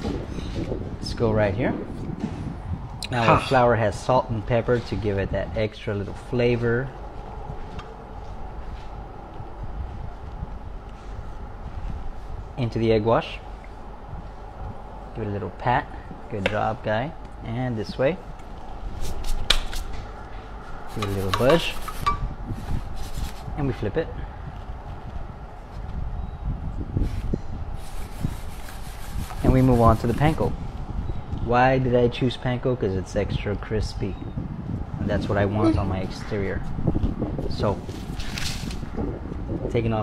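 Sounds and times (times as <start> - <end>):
low steady rumble: 0.0 - 32.1.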